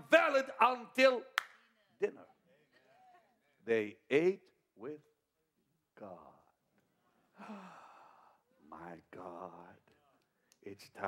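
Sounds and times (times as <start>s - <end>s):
man speaking: 0.0s - 1.4s, 2.0s - 2.4s, 3.6s - 5.1s, 6.0s - 6.5s, 8.6s - 11.0s.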